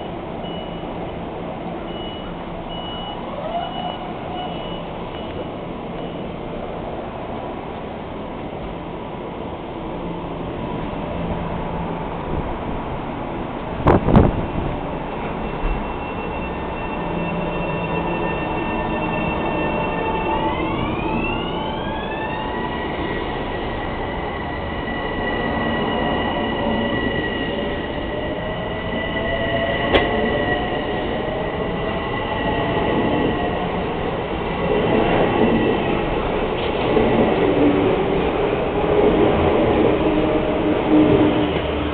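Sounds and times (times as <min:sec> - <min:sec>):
electric train pulling out: 0:14.4 - 0:41.9.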